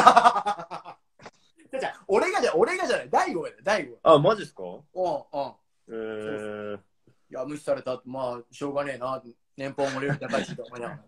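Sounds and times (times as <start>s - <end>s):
man laughing: 0.0s - 1.0s, 9.8s - 10.8s.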